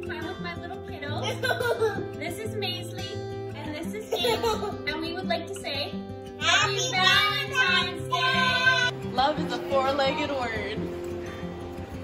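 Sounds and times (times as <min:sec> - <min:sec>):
light background music: 0:00.0 - 0:12.0
child's sing-song voice: 0:06.4 - 0:08.9.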